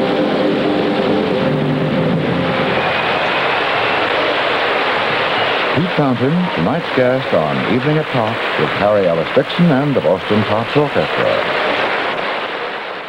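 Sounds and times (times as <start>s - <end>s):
band and orchestra final chord: 0.0s - 3.5s
audience applauding: 0.0s - 13.0s.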